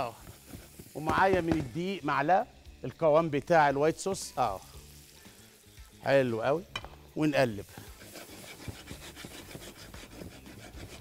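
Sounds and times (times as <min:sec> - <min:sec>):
wooden spatula scraping frying pan: 0:00.0 - 0:01.3, 0:07.7 - 0:11.0.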